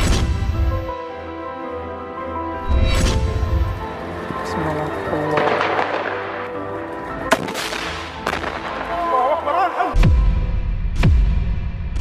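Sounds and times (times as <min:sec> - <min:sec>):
background music with held tones: 0:00.0 - 0:11.1.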